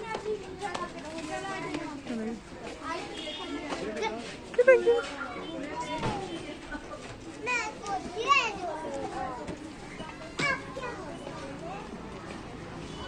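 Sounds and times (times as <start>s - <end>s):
street bustle: 0.0s - 13.0s
children calling out and squealing: 7.4s - 12.0s.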